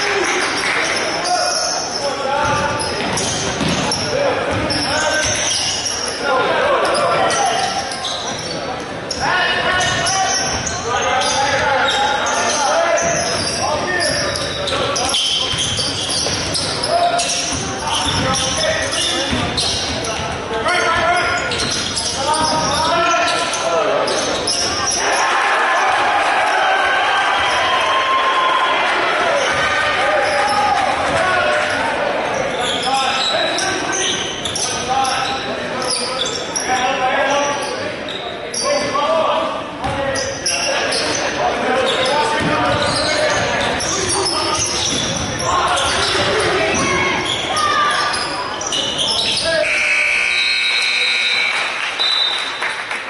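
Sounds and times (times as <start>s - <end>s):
basketball bouncing on hardwood floor: 2.4s - 3.8s, 17.5s - 18.3s.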